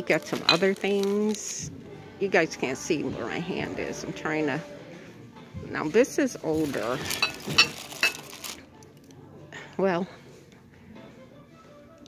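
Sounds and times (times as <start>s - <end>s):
ceramic clinking on wire shelf: 7.1s - 8.3s.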